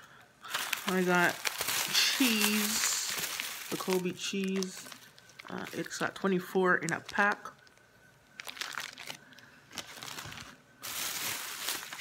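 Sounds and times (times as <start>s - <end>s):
plastic packaging crinkling: 0.4s - 12.0s.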